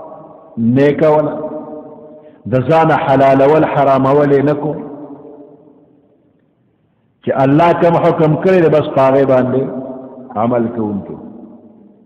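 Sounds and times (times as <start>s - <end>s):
man's amplified voice with echo: 0.0s - 6.2s, 7.2s - 12.0s.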